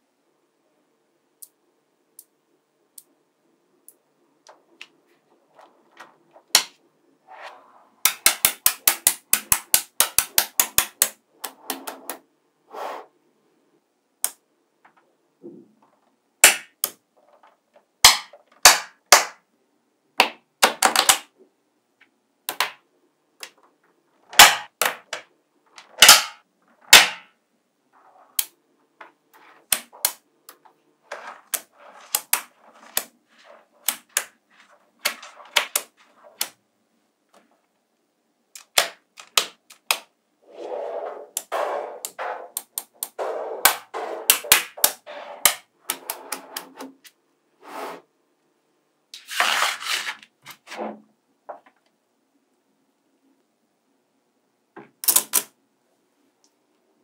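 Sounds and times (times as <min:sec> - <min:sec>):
balls rattling and rubbing: 0:04.5 - 0:12.3, 0:15.8 - 0:18.6, 0:23.4 - 0:36.6, 0:40.4 - 0:47.2.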